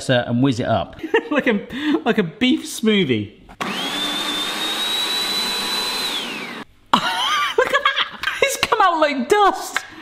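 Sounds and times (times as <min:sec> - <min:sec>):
electric food chopper whining: 0:03.6 - 0:06.7.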